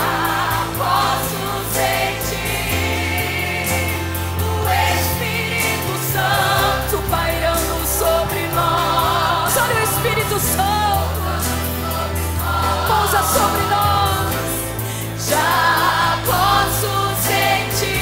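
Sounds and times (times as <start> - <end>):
choir singing a hymn: 0.0 - 18.0.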